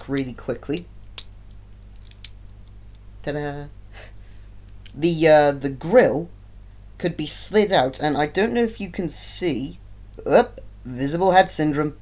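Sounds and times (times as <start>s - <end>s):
plastic toy parts clicking: 2.0s - 3.0s.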